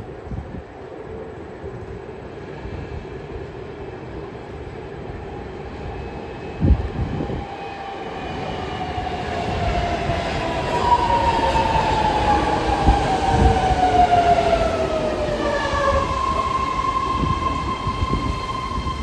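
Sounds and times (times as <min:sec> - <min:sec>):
train rumble: 0:00.0 - 0:19.0.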